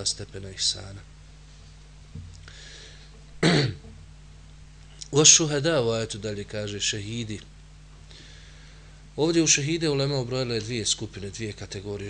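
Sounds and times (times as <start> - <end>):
faint breath: 2.4 - 3.2, 8.1 - 9.1
man clearing his throat: 3.4 - 3.9.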